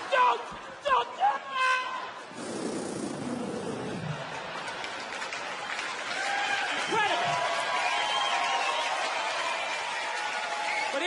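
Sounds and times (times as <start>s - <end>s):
audience applauding: 2.3s - 11.0s
audience laughing: 3.4s - 5.7s.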